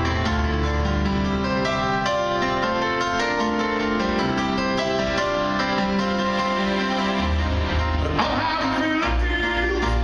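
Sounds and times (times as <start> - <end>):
piano playing: 0.0 - 10.0
man singing: 7.9 - 10.0.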